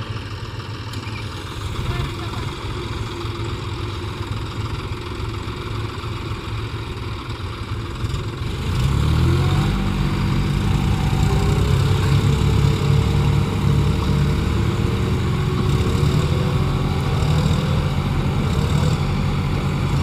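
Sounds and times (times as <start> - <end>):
diesel tractor engines idling: 0.0 - 20.0
tractor engine revving: 0.0 - 20.0.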